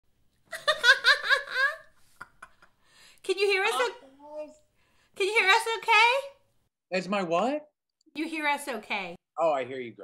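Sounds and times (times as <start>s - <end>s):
woman laughing: 0.5s - 2.7s.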